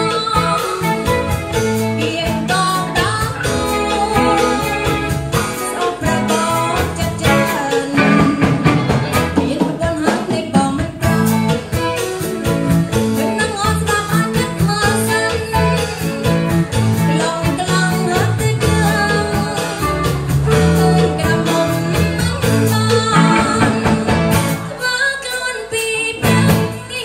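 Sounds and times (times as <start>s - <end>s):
woman singing into a microphone: 0.0s - 12.6s, 13.2s - 27.0s
drum kit steady beat: 0.0s - 27.0s
electric guitar: 0.0s - 27.0s.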